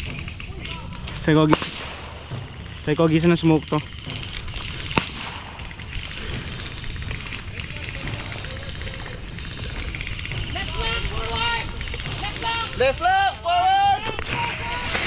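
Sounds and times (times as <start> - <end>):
outdoor rumble: 0.0 - 15.0
distant blank gunfire pops: 1.4 - 2.8, 4.0 - 6.5
distant shouting voices: 2.1 - 15.0.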